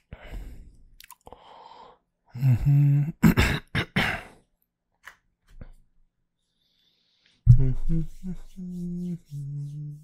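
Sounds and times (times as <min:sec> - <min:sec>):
man clearing his throat: 0:03.0 - 0:04.4.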